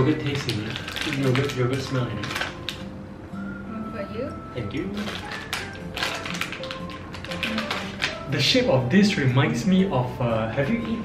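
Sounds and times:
plastic snack wrappers crackling: 0:00.0 - 0:02.9, 0:04.9 - 0:08.6
soft background music: 0:00.0 - 0:11.0.

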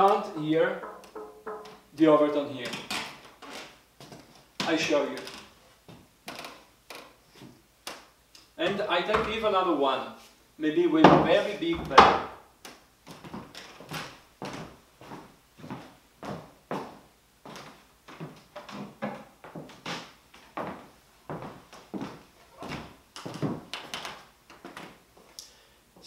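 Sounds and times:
wooden didgeridoos knocking: 0:00.0 - 0:03.3
footsteps: 0:00.0 - 0:06.1, 0:13.1 - 0:25.3.

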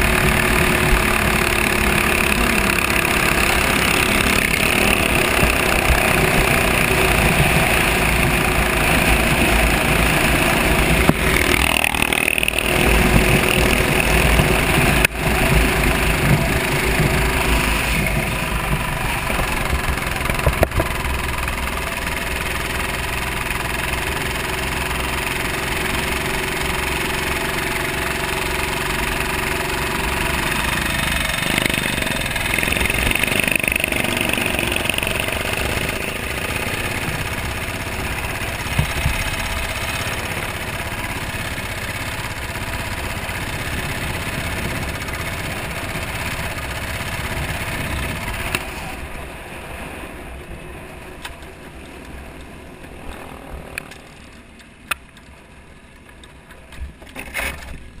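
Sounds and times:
kart engine running: 0:00.0 - 0:58.0.

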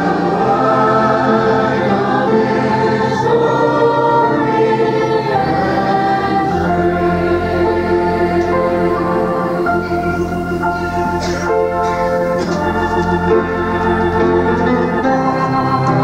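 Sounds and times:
group singing a hymn: 0:00.0 - 0:16.0.

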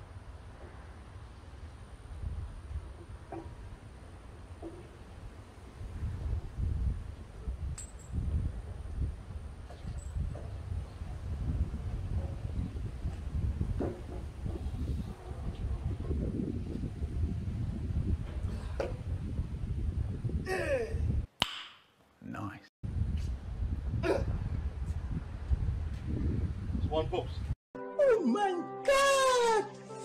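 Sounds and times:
metal clinks: 0:07.8 - 0:08.2.

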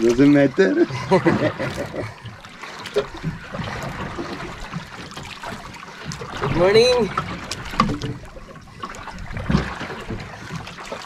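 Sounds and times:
water lapping against boat hull: 0:00.0 - 0:11.0.

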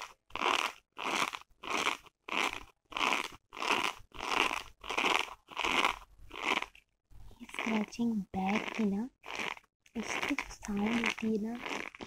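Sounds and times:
fingernails scratching fabric: 0:08.5 - 0:12.0.

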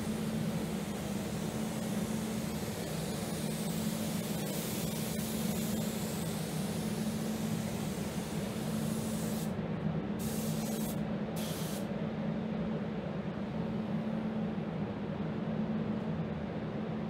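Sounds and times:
paint spray gun hissing: 0:00.0 - 0:09.5, 0:10.2 - 0:11.9
ventilation fans humming: 0:00.0 - 0:17.0.

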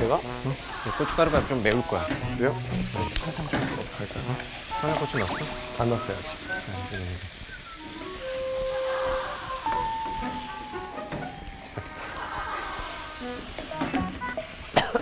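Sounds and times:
faint frying sizzle: 0:00.0 - 0:15.0
background music sliding note: 0:01.5 - 0:07.2, 0:07.8 - 0:14.5.

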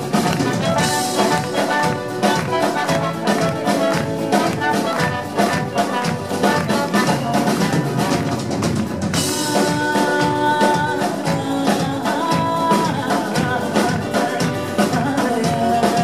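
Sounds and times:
live band playing: 0:00.0 - 0:16.0
steady drum beat: 0:00.0 - 0:16.0.

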